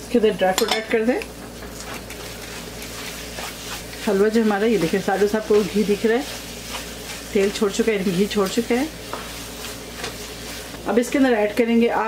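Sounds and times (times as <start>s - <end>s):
soft sizzle of fat: 0.0s - 12.0s
wooden spatula stirring in pan: 1.3s - 12.0s.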